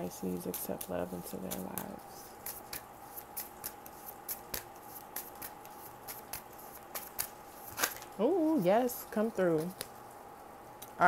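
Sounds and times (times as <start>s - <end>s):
cards being shuffled: 0.2s - 8.6s.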